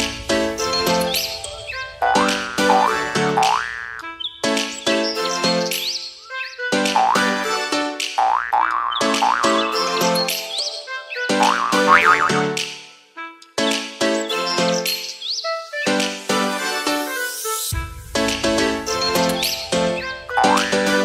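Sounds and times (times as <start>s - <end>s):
upbeat instrumental music: 0.0s - 21.0s.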